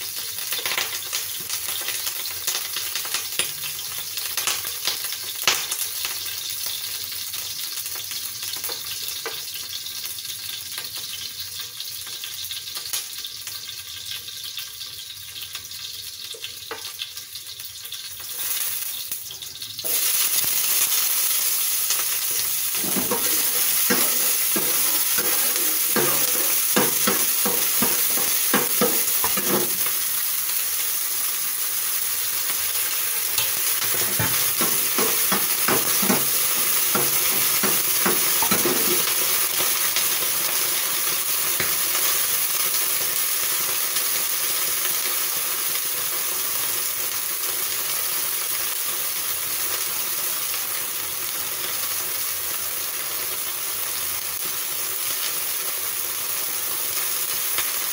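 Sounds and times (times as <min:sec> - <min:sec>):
scallions sizzling in oil: 0:00.0 - 0:57.9
spatula scraping pan: 0:22.3 - 0:29.9, 0:33.4 - 0:39.5.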